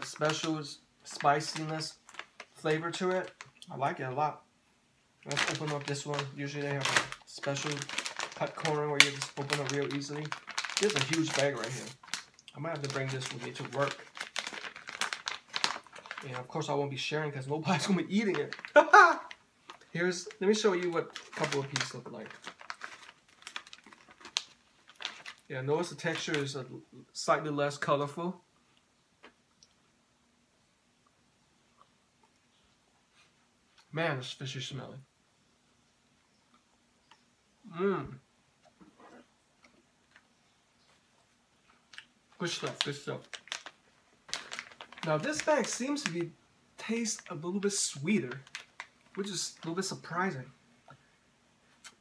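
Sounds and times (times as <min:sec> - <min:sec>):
plastic bag crinkling: 0:00.0 - 0:03.6, 0:05.2 - 0:26.6, 0:41.8 - 0:50.1
quiet hum: 0:00.0 - 0:52.0.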